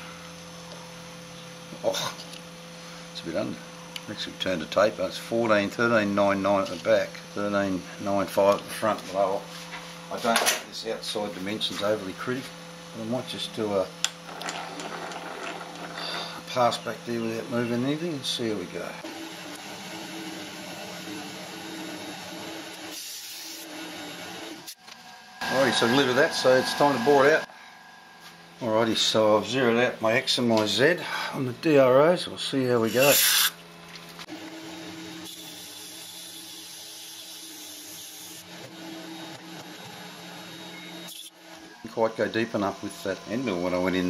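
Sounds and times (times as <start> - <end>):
faint motor hum: 0.0 - 44.0
lathe humming: 11.0 - 31.9
metal lathe running: 14.3 - 24.7, 25.4 - 27.5, 34.3 - 44.0
boring tool cutting aluminium: 32.9 - 33.6, 40.8 - 41.4.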